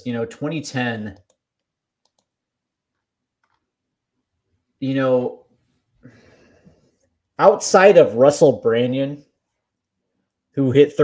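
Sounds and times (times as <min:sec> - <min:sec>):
person speaking: 0:00.0 - 0:01.5, 0:04.8 - 0:05.5, 0:07.4 - 0:09.4.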